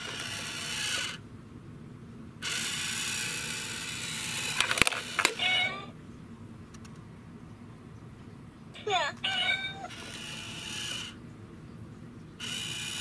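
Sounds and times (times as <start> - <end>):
toy motor and gears whirring: 0.0 - 1.2, 2.4 - 5.9, 8.8 - 11.2, 12.4 - 13.0.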